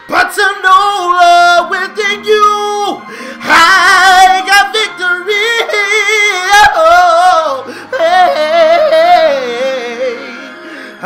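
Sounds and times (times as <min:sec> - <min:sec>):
man singing gospel: 0:00.0 - 0:11.0.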